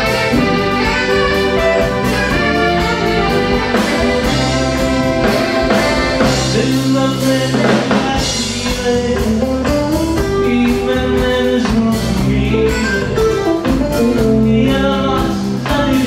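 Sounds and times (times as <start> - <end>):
saxophone: 0.0 - 7.3, 12.6 - 14.2
bass: 0.0 - 16.0
drum kit beat: 0.0 - 16.0
electric guitars: 0.0 - 16.0
keyboard: 0.0 - 16.0.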